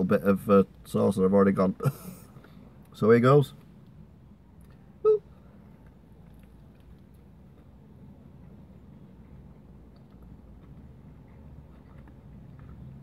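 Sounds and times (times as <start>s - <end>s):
low steady hum: 0.0s - 13.0s
brief vocal sound: 5.0s - 5.3s
man chewing: 5.7s - 13.0s.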